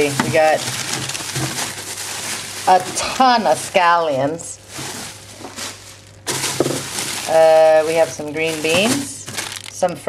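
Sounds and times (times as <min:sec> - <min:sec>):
plastic bags rustling: 0:00.0 - 0:10.0.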